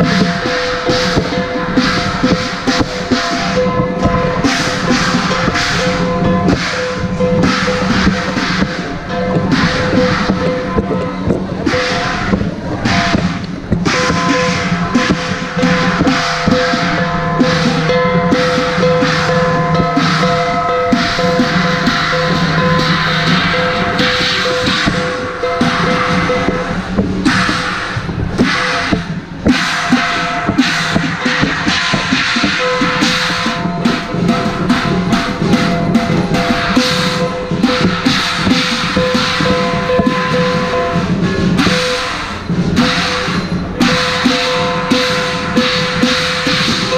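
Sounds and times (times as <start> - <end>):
drums gongs and cymbals: 0.0 - 46.9
metallic ringing tones: 0.0 - 46.9.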